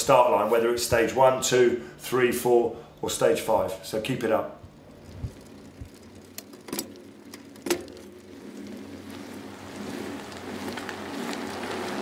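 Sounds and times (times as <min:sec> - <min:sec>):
rushing rolling noise: 0:04.6 - 0:12.0.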